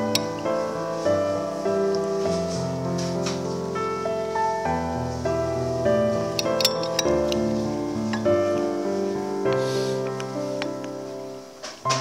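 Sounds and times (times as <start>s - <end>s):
gentle piano music: 0.0s - 12.0s
cup clinking on saucer: 0.1s - 0.3s, 6.4s - 7.4s.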